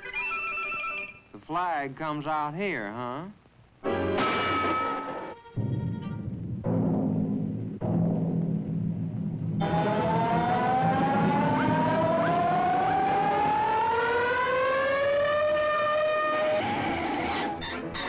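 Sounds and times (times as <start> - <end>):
low rumble: 5.6 - 13.1
rising siren-like tone: 9.6 - 17.6.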